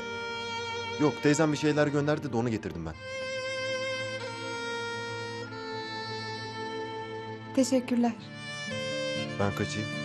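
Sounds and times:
violin playing slow notes: 0.0 - 10.0.

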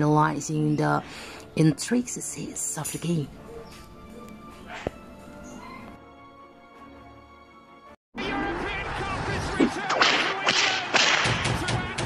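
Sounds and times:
whip-like cracks: 9.7 - 11.7.

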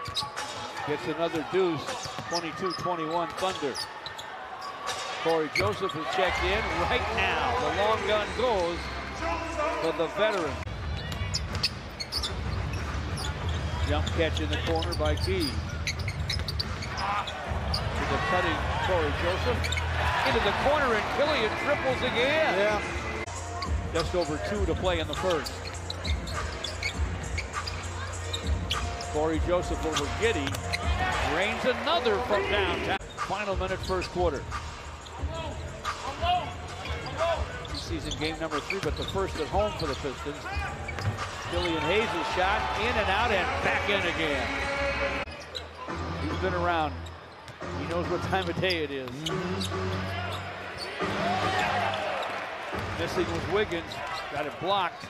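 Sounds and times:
shoe squeaks on court: 0.0 - 0.6, 1.8 - 6.1, 9.8 - 17.9, 19.3 - 20.4, 23.6 - 29.2, 29.8 - 31.0, 36.8 - 42.1, 48.2 - 51.1
arena noise: 0.0 - 55.0.

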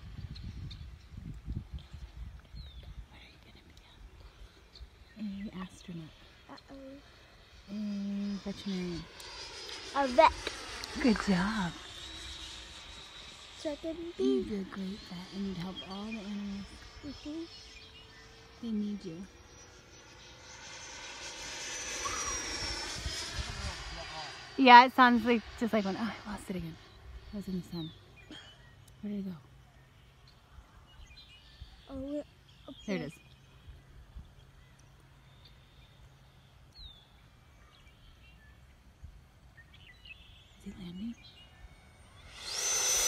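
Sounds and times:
electric ducted fan whine: 4.3 - 43.0
bird chirps: 29.6 - 43.0.

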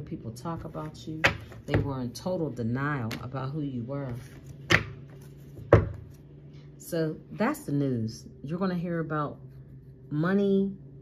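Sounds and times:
low steady hum: 0.0 - 11.0
knocks on wooden tabletop: 5.7 - 6.0.

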